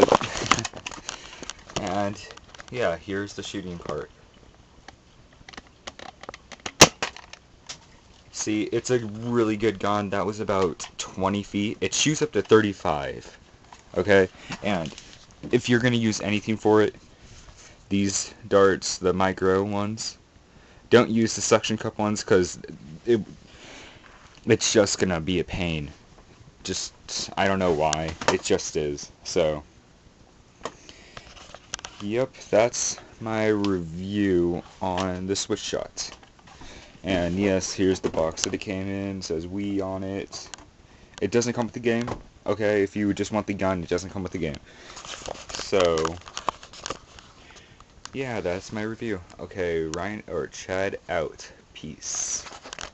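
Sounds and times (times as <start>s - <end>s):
handling clicks and rustles: 0.0s - 18.2s, 30.6s - 50.2s, 52.0s - 52.9s.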